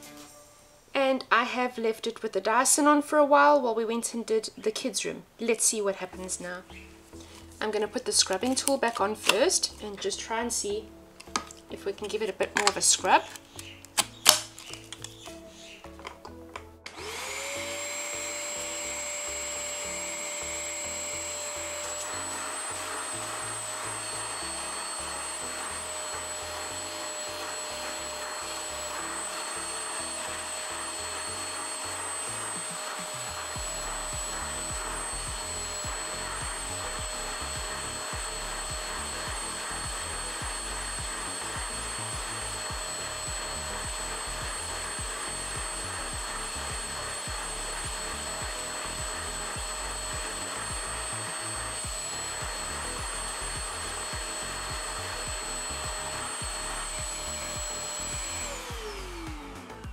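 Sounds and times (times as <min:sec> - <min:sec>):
spot cleaner motor whine: 0:16.8 - 0:59.9
nozzle scrubbing carpet: 0:17.0 - 0:59.5.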